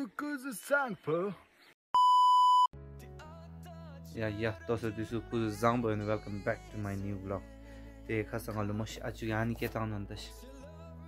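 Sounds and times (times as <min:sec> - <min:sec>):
loud test-tone beep: 0:02.0 - 0:02.7
soft background music: 0:02.8 - 0:11.0.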